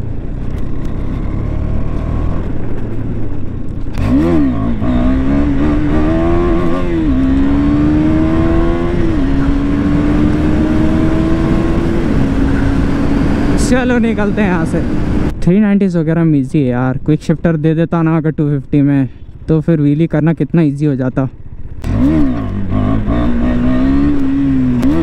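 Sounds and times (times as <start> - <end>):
motorcycle engine revving: 0.0 - 15.3, 21.4 - 25.0.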